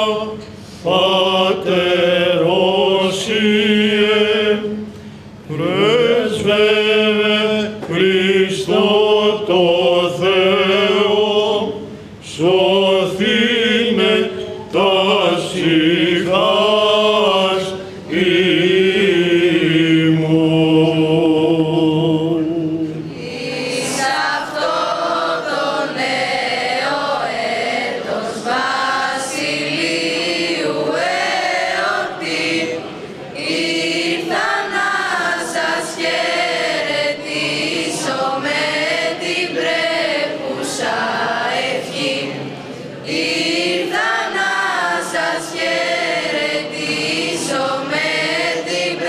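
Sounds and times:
choir singing: 0.0s - 4.9s, 5.5s - 49.0s.

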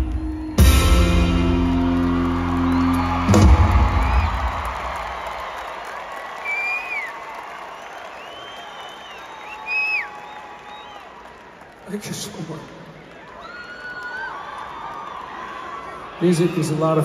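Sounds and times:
crowd cheering: 0.0s - 17.0s
shrill whistles: 6.3s - 11.2s.

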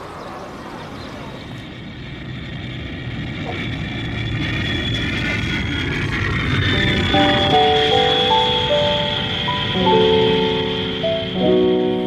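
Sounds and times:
street traffic noise: 0.0s - 5.4s
jet engine rumble: 0.0s - 12.0s
jet engine whine: 0.0s - 12.0s.

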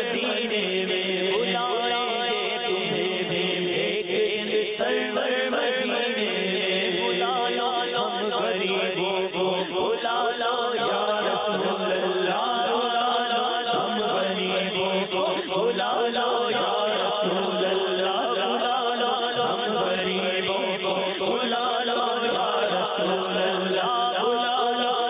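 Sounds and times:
man singing into a microphone: 0.0s - 25.0s.

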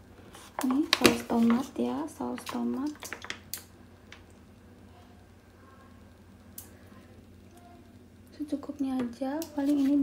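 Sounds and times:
low room hum: 0.0s - 10.0s
plastic pouch clicks and crinkles: 2.4s - 4.2s.

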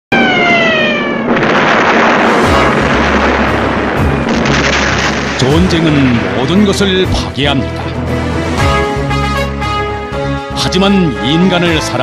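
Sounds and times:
falling whistle of a projectile: 0.1s - 1.5s
blast rushing noise: 0.1s - 9.1s.

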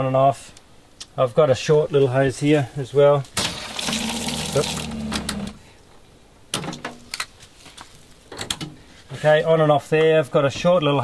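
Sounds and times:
water running through tap: 3.4s - 5.1s
water pump humming: 3.4s - 5.6s.

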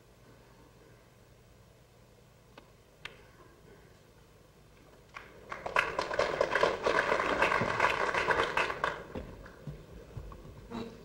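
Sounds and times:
crowd clapping: 5.1s - 9.6s.

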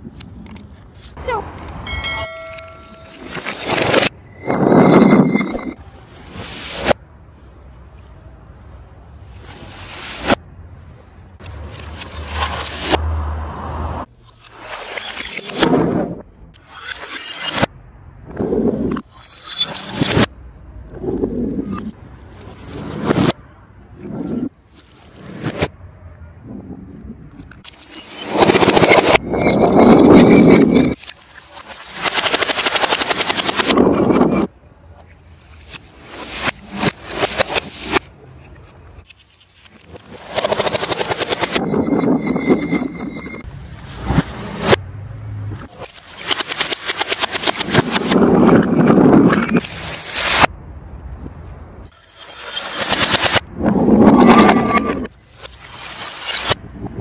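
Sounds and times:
reversed crushing and smashing: 2.5s - 7.0s, 11.4s - 13.0s, 27.4s - 34.5s, 35.6s - 38.2s, 39.0s - 44.8s, 45.6s - 50.5s, 51.9s - 56.6s.

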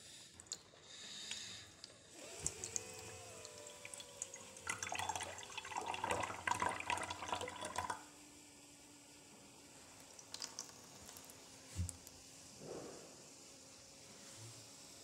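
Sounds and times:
water trickling and splashing into glass: 3.6s - 8.0s.

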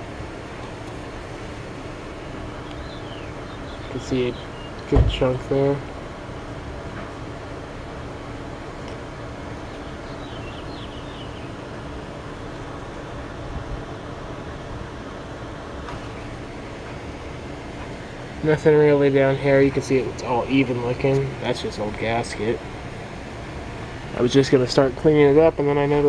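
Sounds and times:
steady background hum: 0.0s - 26.0s.

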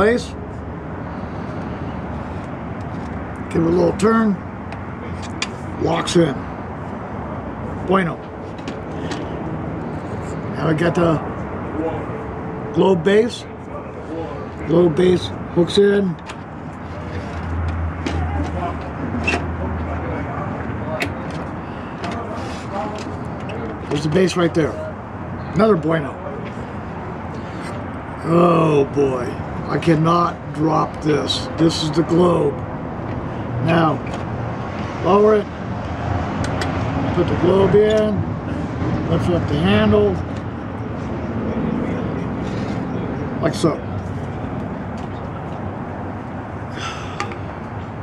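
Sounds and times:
passing vehicle engine and road noise: 0.0s - 48.0s.

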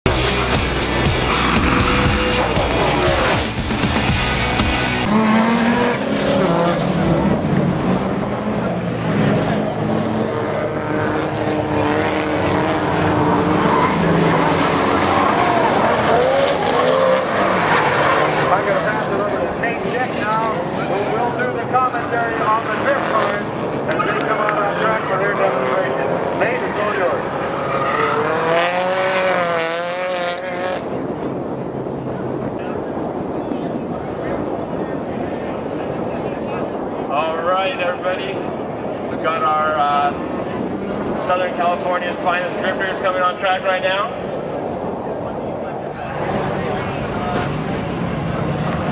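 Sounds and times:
car engines revving: 0.1s - 48.9s
tires squealing: 11.6s - 21.0s, 26.6s - 29.7s.

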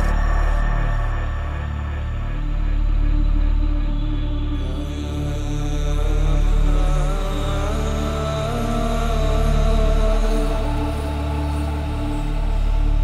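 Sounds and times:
house music with synth pads: 0.0s - 7.1s.

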